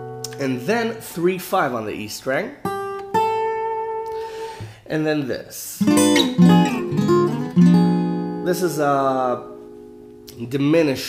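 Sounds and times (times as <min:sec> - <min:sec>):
acoustic guitar notes: 0:00.0 - 0:04.9, 0:05.8 - 0:10.9.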